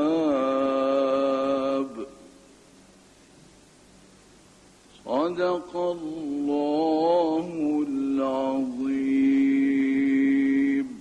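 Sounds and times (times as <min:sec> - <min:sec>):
man chanting: 0:00.0 - 0:02.3, 0:05.0 - 0:11.0.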